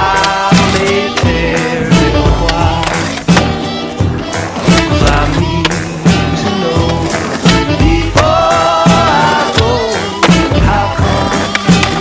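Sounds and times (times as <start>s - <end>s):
music with steady beat: 0.0s - 12.0s
skateboard grinding metal handrail: 0.0s - 12.0s
skateboard knocking on ground: 4.7s - 12.0s.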